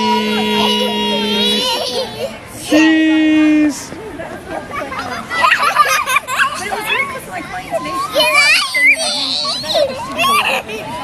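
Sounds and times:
girls laughing and squealing: 0.0 - 2.4, 4.6 - 11.0.

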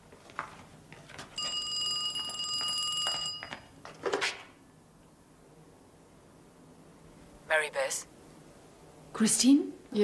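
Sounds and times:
telephone bell ringing: 1.4 - 3.8.

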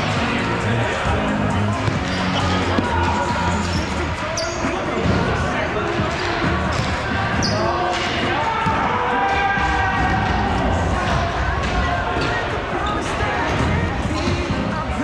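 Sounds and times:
players' voices echoing: 0.0 - 15.0.

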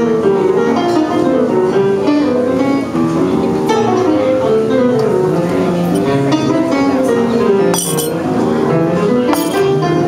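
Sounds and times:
jazz piano: 0.0 - 10.0.

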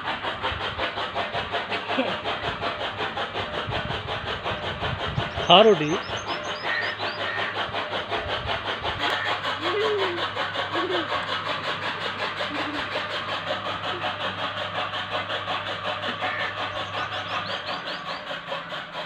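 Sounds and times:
engine running steadily: 0.0 - 19.0.

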